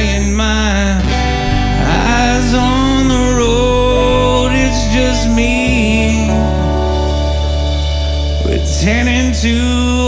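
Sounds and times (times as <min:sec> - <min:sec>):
man singing: 0:00.0 - 0:07.1, 0:08.3 - 0:10.0
acoustic guitar strumming: 0:00.0 - 0:10.0.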